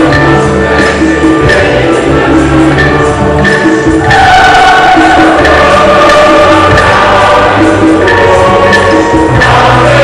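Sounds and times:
choir singing with instruments: 0.0 - 10.0
steady bass line: 0.0 - 10.0.

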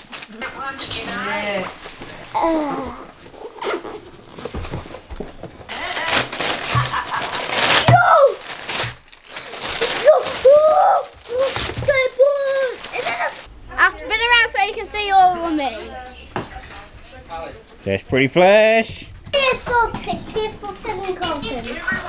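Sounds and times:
wrapping paper rustling and tearing: 0.0 - 5.0, 5.7 - 13.5, 20.6 - 22.0
children's excited exclamations: 7.8 - 8.4, 9.9 - 13.5.

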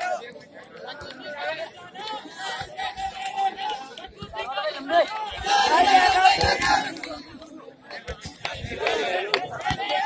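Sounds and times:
overlapping chatter of voices: 0.0 - 10.0.

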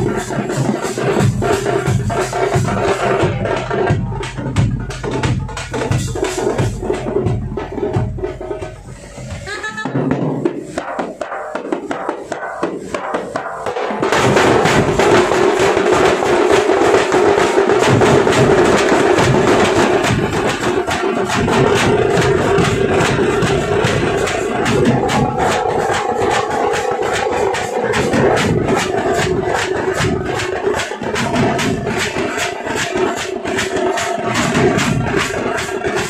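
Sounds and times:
drums struck with sticks: 0.0 - 36.0
ringing drum tone: 0.0 - 36.0.

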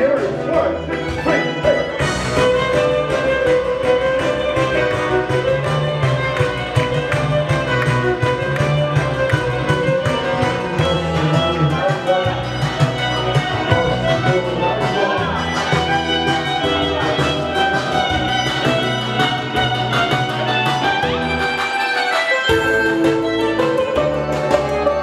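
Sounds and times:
backing track with beat and bass: 0.0 - 25.0
electric violin melody: 0.0 - 25.0.

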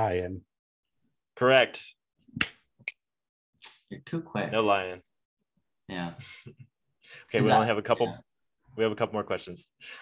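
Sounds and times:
finger snaps: 2.4 - 3.0.

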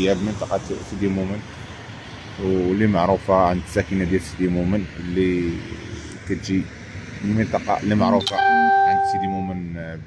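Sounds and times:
man speaking: 0.0 - 1.4, 2.4 - 5.6, 6.3 - 10.0
loud steady electronic tone: 8.2 - 9.6.

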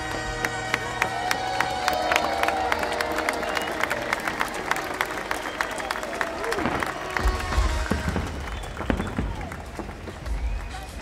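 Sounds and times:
crowd voices: 0.0 - 11.0
music: 0.0 - 11.0
fireworks cracking and banging: 4.4 - 11.0
deep firework booms: 6.6 - 11.0.

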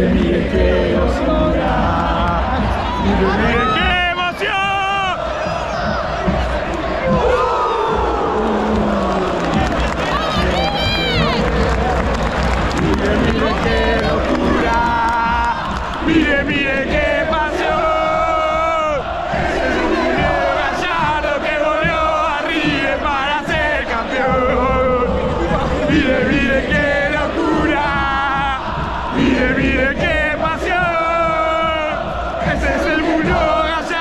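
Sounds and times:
stadium crowd cheering: 0.0 - 34.0.

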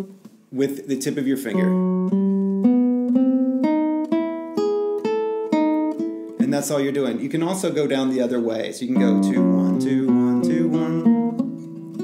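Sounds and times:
classical guitar plucked notes: 1.4 - 7.3, 8.9 - 12.0.

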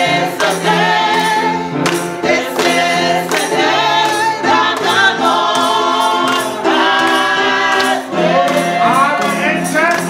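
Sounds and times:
gospel choir singing: 0.0 - 10.0
hand claps: 0.3 - 10.0.

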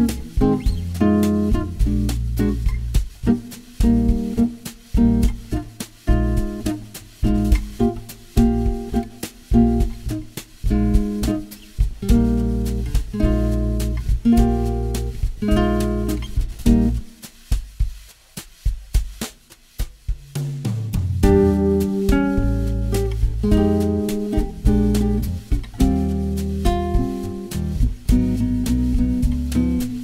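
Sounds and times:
bossa nova guitar chords: 0.0 - 17.5, 20.9 - 30.0
light drum hits: 0.0 - 30.0.

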